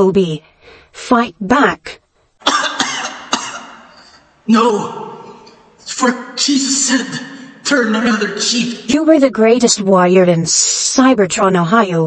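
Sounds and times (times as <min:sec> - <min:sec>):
person coughing: 0:02.4 - 0:05.6.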